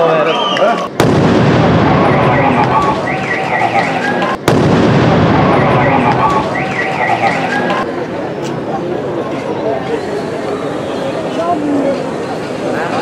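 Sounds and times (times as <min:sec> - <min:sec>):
explosion blast: 0:01.0 - 0:07.8
warbling alarm tone: 0:01.6 - 0:04.4, 0:05.0 - 0:07.8.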